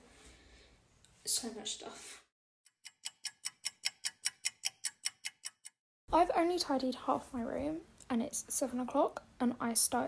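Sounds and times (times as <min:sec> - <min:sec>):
sharp ticking clicks: 0:02.7 - 0:05.8.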